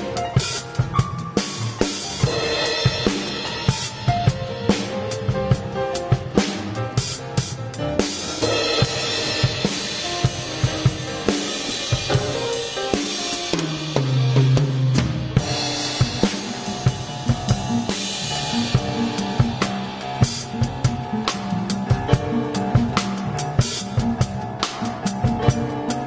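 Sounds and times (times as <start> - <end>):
drum kit playing: 0.0 - 26.0
upright bass line: 13.8 - 26.0.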